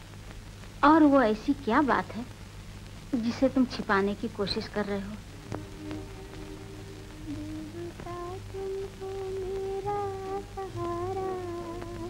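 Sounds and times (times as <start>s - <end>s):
low steady hum: 0.0s - 12.0s
slow film score melody: 5.3s - 12.0s.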